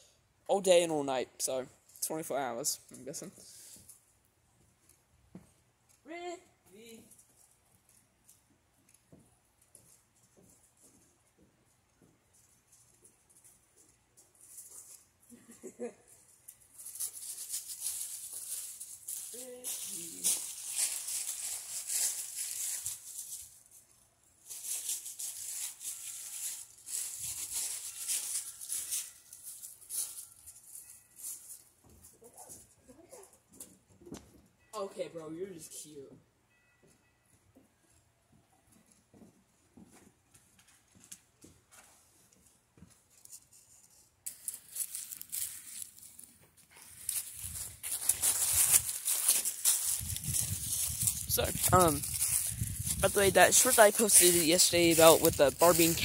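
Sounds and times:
dry leaves rustling: 15.7 - 32.6, 43.2 - 56.0.

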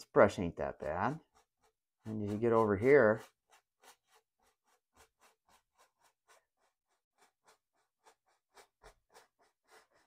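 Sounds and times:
brush strokes on canvas: 0.2 - 10.0.

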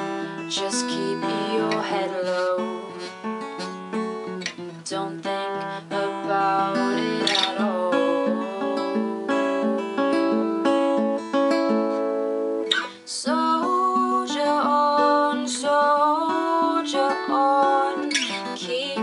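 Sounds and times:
acoustic guitar picking and strumming: 0.0 - 19.0.

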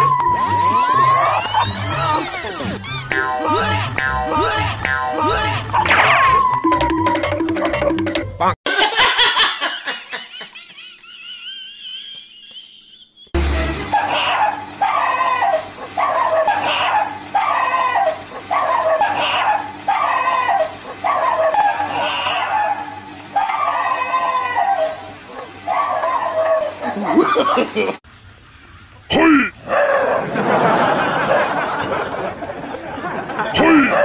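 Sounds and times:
high cry: 0.0 - 6.6, 13.9 - 27.4
dogs fighting snarling barks: 20.9 - 23.6.

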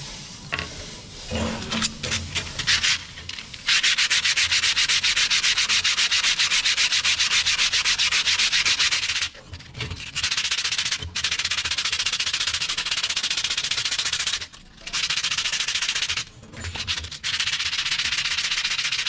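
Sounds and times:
sandpaper rubbing on metal sheet: 0.0 - 19.0.

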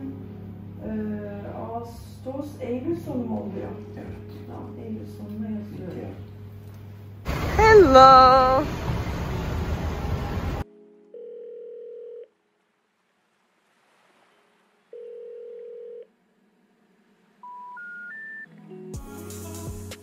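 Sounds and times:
loud noise: 7.3 - 10.6.

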